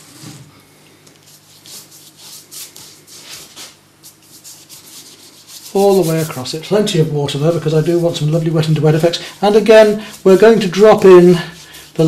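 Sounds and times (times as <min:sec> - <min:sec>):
brush swishing across paper: 0:01.3 - 0:06.6, 0:10.1 - 0:12.0.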